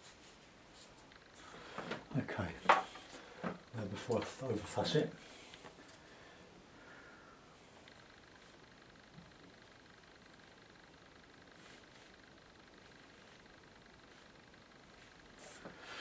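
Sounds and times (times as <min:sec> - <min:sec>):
faint high whine: 0:00.0 - 0:16.0
faint steady hiss: 0:00.0 - 0:16.0.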